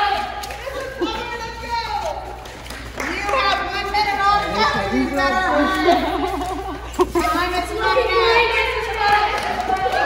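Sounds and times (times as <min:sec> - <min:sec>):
women talking and calling out: 0:03.0 - 0:10.0.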